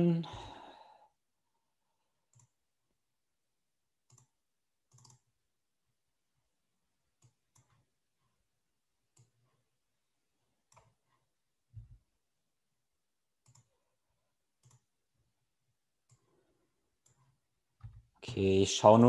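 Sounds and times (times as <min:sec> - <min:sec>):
computer mouse clicks: 0:02.3 - 0:02.6, 0:04.0 - 0:05.3, 0:07.2 - 0:07.9, 0:10.6 - 0:11.2, 0:13.4 - 0:13.8, 0:14.6 - 0:14.9, 0:16.0 - 0:16.3, 0:17.0 - 0:18.1.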